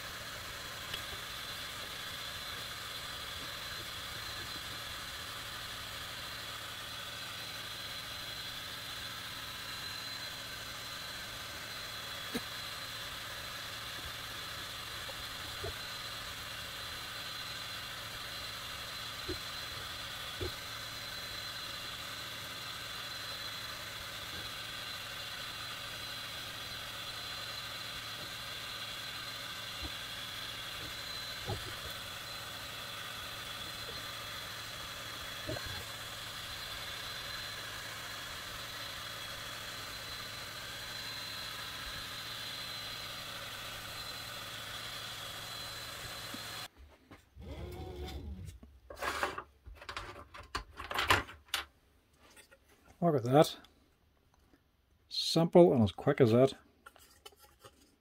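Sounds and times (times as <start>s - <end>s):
laser engraver whirring and whining: 0.0s - 46.7s.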